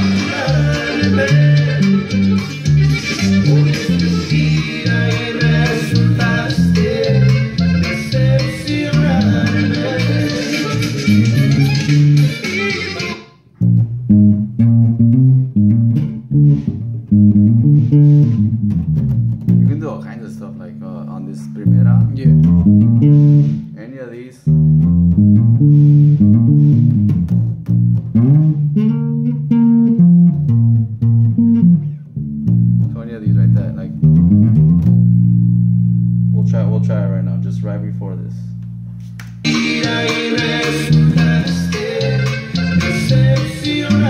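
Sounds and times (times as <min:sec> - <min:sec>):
full band recording: 0:00.0 - 0:20.0, 0:21.6 - 0:23.8, 0:24.5 - 0:35.9, 0:38.6 - 0:44.0
electric bass played fingerstyle: 0:00.0 - 0:44.0.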